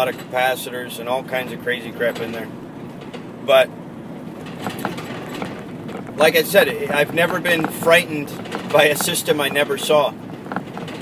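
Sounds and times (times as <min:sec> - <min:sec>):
van cabin rumble: 0:00.0 - 0:11.0
person speaking: 0:06.1 - 0:10.2.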